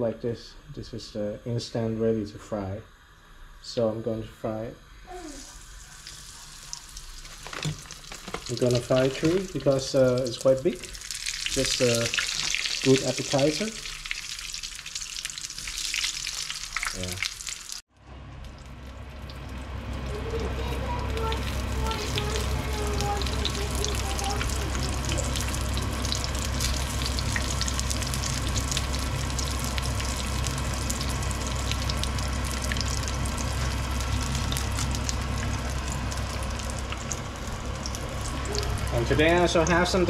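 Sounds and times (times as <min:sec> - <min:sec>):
food frying in hot oil: 0:05.1 - 0:17.8, 0:18.4 - 0:40.0
low steady hum: 0:17.9 - 0:40.0.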